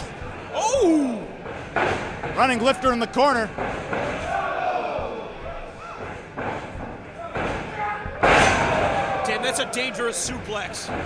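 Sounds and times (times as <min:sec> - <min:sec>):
crowd voices echoing: 0:02.4 - 0:11.0.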